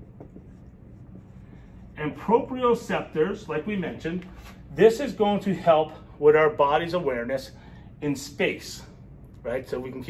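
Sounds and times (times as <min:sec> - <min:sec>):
marker writing on whiteboard: 0:00.0 - 0:02.2
low room hum: 0:00.0 - 0:10.0.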